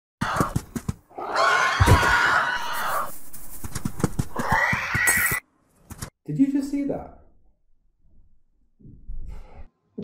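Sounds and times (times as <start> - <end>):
creature screech: 1.2 - 3.1, 4.2 - 5.4.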